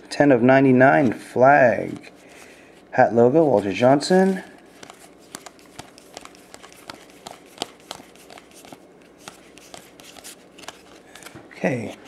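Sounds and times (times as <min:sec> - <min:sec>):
trading cards flipped by hand: 0:01.8 - 0:02.2, 0:03.5 - 0:12.0.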